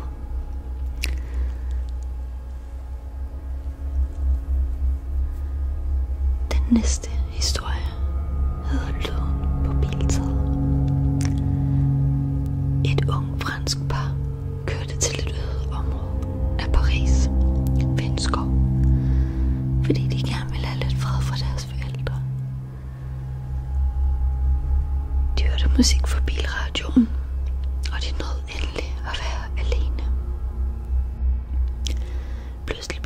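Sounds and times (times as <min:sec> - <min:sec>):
ambient music drone: 0:00.0 - 0:33.0
person whispering: 0:06.5 - 0:08.0, 0:12.8 - 0:18.5, 0:19.8 - 0:22.3, 0:25.4 - 0:27.2, 0:27.8 - 0:30.1, 0:32.6 - 0:33.0.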